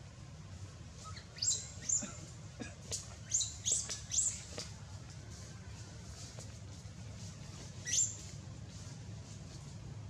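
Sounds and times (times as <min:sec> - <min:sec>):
high-pitched chirping calls: 0:01.1 - 0:02.1, 0:03.2 - 0:04.5, 0:07.8 - 0:08.3.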